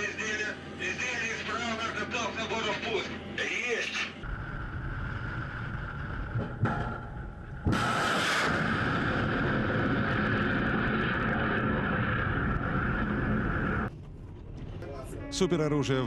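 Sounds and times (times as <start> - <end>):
rocket exhaust rushing: 7.3 - 13.9
missile launch blast: 7.6 - 13.9.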